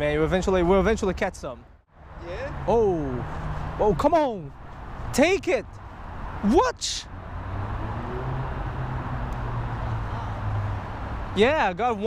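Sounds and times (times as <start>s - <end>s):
traffic engine hum: 0.0s - 12.0s.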